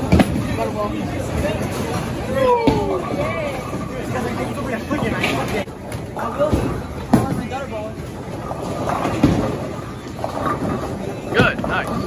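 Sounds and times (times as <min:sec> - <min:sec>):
bowling ball rolling: 0:00.0 - 0:12.0
crowd chatter: 0:00.0 - 0:12.0
bowling pins clattering: 0:06.5 - 0:12.0.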